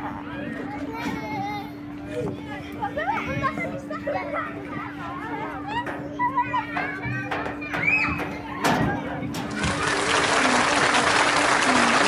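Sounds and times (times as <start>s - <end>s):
children shouting and squealing: 0.1s - 10.0s.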